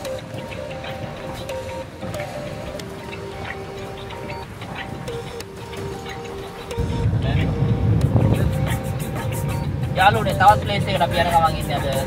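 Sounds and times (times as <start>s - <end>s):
car cabin rumble: 0.0s - 12.0s
music playing: 0.0s - 12.0s.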